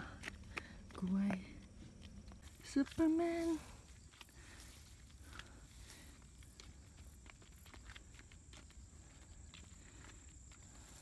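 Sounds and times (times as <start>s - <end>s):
soft footsteps: 0.0s - 11.0s.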